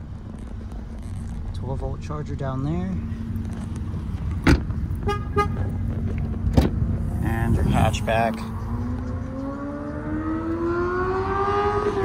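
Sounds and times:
steady low hum: 0.0 - 9.5.

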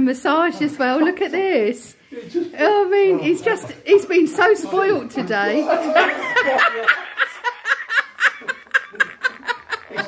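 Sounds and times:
person laughing: 6.1 - 10.0.

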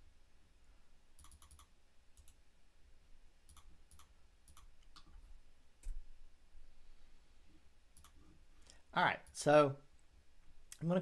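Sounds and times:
computer mouse clicks: 1.2 - 2.4, 3.5 - 5.2, 8.0 - 9.4.

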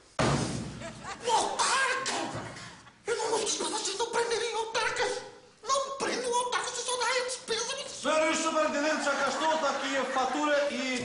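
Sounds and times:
laughter: 0.8 - 1.3, 8.9 - 10.7.

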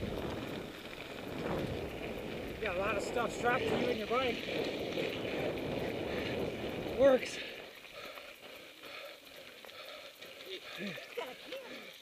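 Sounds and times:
wind rushing on microphone: 0.0 - 7.7
bike tyres rolling on dirt: 0.0 - 12.0.

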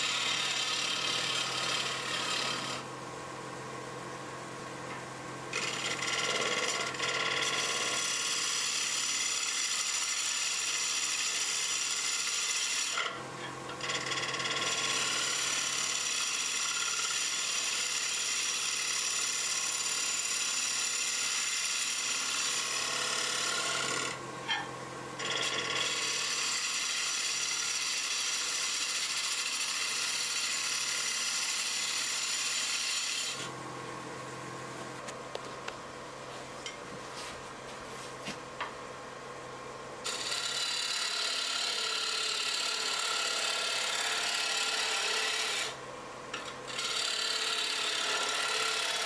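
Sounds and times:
gouge cutting wood on a lathe: 0.0 - 2.9, 5.5 - 24.6, 25.2 - 33.5, 40.0 - 49.0.

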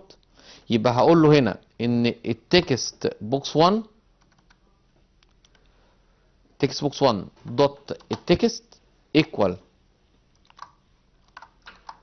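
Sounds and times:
faint keyboard keystrokes: 4.2 - 4.6, 7.9 - 8.4, 10.4 - 12.0.

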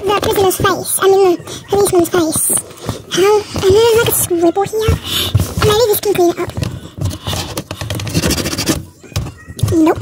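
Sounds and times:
plastic scraping on cardboard: 2.2 - 10.0.

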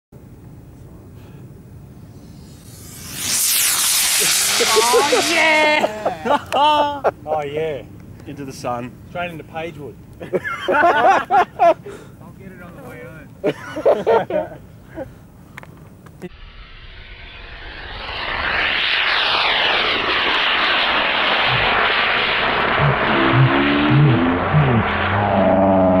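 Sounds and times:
aircraft engine noise: 1.3 - 7.2, 16.3 - 26.0
falling whoosh: 2.0 - 6.3, 16.3 - 26.0
high whistling tones sliding down: 2.0 - 6.4, 16.3 - 26.0
rocket motor hissing rush: 2.0 - 6.6, 16.3 - 26.0.

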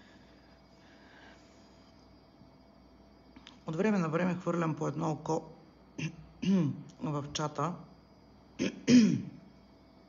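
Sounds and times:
woman clearing her throat: 6.0 - 6.9, 8.6 - 9.4.

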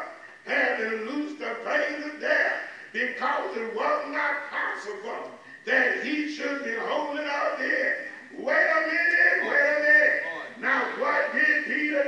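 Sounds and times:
man preaching through microphone: 0.0 - 12.0.

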